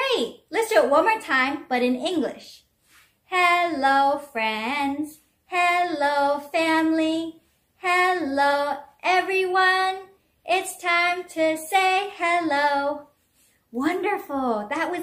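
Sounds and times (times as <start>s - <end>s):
woman singing unaccompanied: 3.3s - 13.1s.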